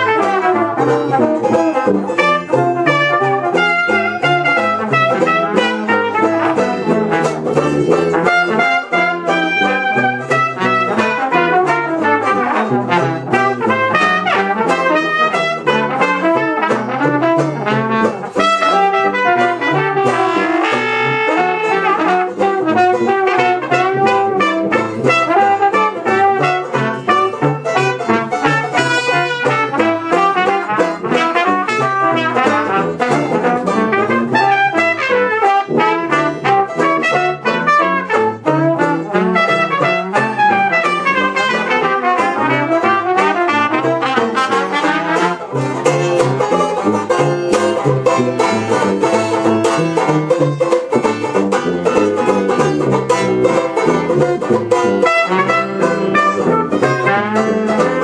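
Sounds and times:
jazz band playing live: 0.0s - 58.0s
trombone: 0.0s - 58.0s
trumpet: 0.0s - 58.0s.

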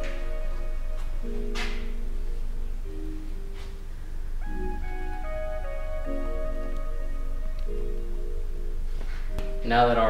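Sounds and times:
soft sustained chords music: 0.0s - 10.0s.

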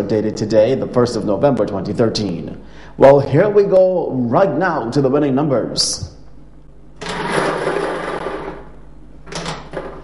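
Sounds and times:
lottery machine running: 7.0s - 10.0s.

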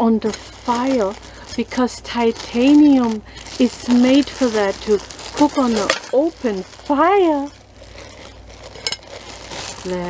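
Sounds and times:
plastic wrap crinkling: 0.0s - 10.0s.

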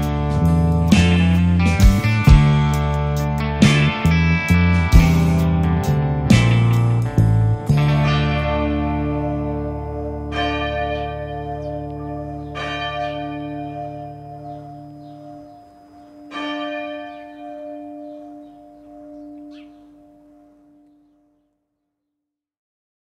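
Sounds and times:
bell tones ringing: 9.8s - 20.3s.

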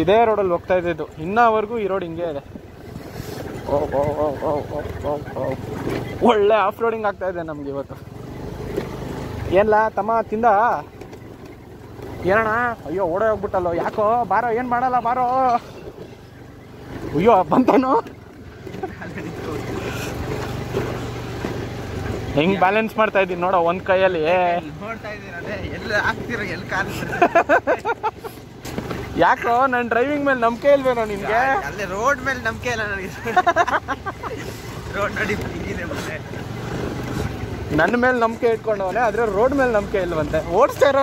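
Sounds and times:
motorcycle rumble on dirt track: 0.0s - 41.0s
wind and road noise: 0.0s - 41.0s.

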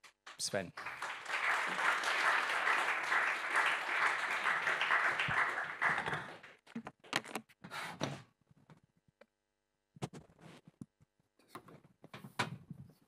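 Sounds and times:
audience applauding: 0.3s - 6.6s.

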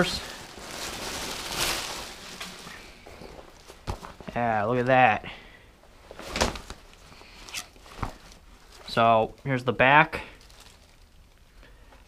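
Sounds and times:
plastic packaging crinkling: 0.0s - 4.3s, 6.1s - 12.0s
fabric rustling: 0.0s - 4.4s, 5.8s - 9.5s, 10.3s - 12.0s.

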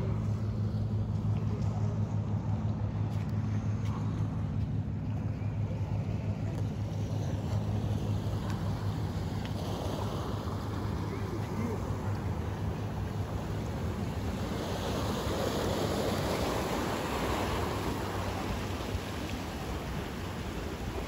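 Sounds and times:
faint voices: 0.0s - 15.2s
boat motor drone: 0.0s - 21.0s
waves washing: 0.0s - 21.0s
wind: 0.0s - 21.0s.

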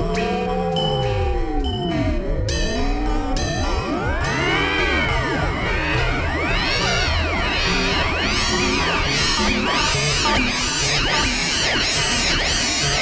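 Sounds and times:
pulsing low drone: 0.0s - 13.0s
electronic pitch glides: 1.0s - 13.0s.

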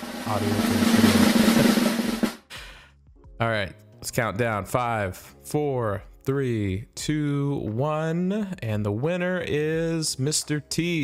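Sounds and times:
fast snare drum roll: 0.0s - 2.4s
low steady drum: 0.0s - 2.4s.

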